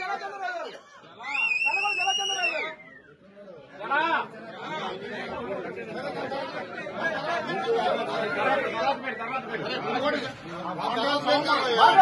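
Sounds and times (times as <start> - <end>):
crowd of men chattering: 0.0 - 12.0.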